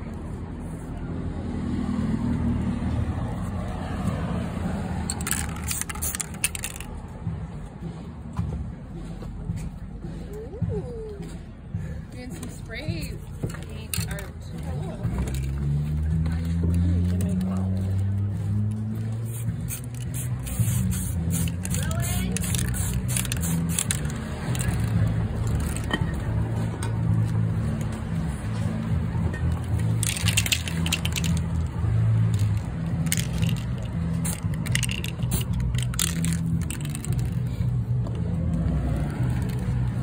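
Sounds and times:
vehicle engine humming: 0:00.0 - 0:40.0
spray paint can hissing: 0:05.0 - 0:06.9, 0:19.0 - 0:25.9, 0:29.5 - 0:37.7, 0:38.4 - 0:40.0.

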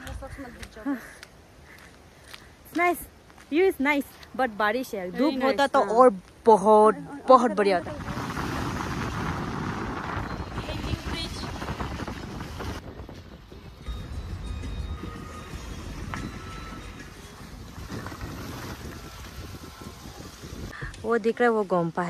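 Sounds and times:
wind buffeting microphone: 0:00.0 - 0:03.4, 0:06.8 - 0:21.4.

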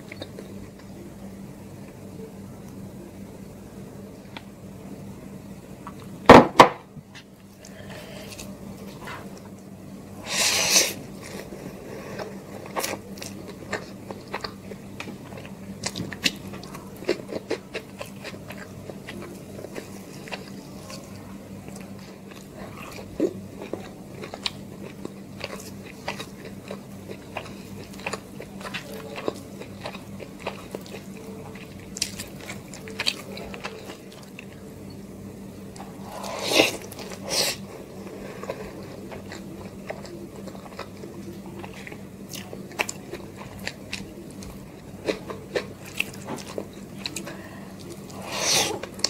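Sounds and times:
low steady hum: 0:00.0 - 0:49.0
chewing food: 0:11.0 - 0:35.0, 0:35.7 - 0:49.0.

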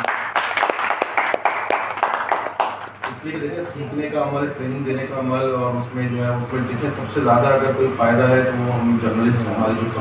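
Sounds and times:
audience applauding: 0:00.0 - 0:03.2.

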